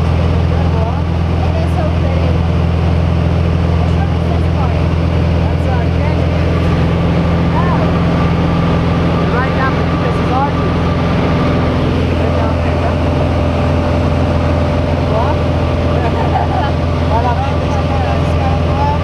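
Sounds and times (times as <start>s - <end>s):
airplane engine and propeller drone: 0.0s - 19.0s
faint voices talking: 3.4s - 19.0s.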